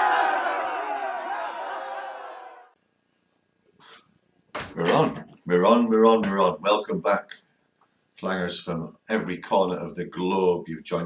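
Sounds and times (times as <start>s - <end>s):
many voices shouting: 0.0s - 2.8s.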